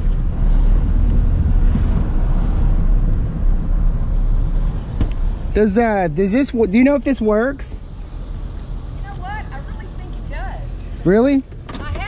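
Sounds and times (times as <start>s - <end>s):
wind noise through window: 0.0s - 5.3s
truck engine and road rumble: 0.0s - 12.0s.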